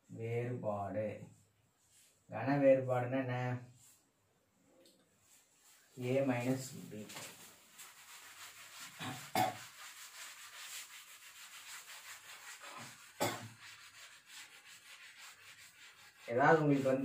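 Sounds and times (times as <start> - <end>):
cloth wiping chalkboard: 1.2 - 2.3, 3.6 - 4.2, 5.2 - 17.0.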